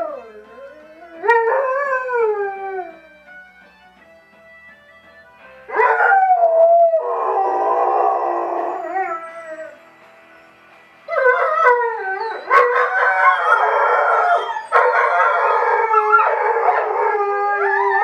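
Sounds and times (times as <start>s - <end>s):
dogs howling: 0.0s - 3.0s, 5.7s - 9.8s, 11.1s - 18.0s
harmonica music: 0.0s - 18.0s.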